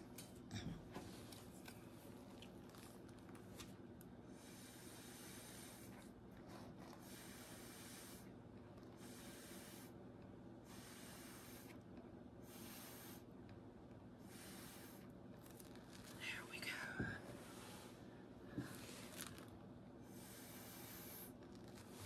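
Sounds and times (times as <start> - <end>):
breath puffs through a straw: 4.4 - 6.0, 7.0 - 8.3, 9.0 - 10.0, 10.6 - 11.8, 12.4 - 13.3, 14.2 - 15.1, 20.0 - 22.0.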